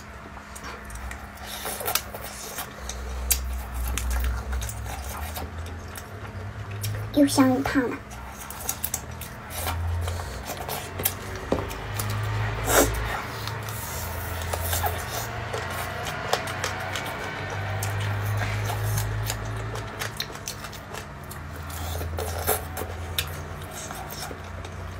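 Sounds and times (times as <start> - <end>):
biting and chewing crispy food: 0.0 - 24.9.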